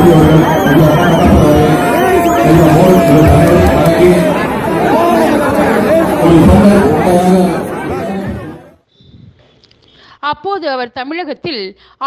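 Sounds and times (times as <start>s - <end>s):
crowd chattering and calling out: 0.0s - 8.9s.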